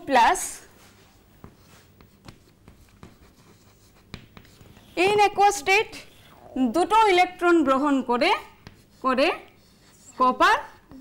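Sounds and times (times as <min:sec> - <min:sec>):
chalk scratching on chalkboard: 0:00.7 - 0:06.4, 0:07.8 - 0:10.8.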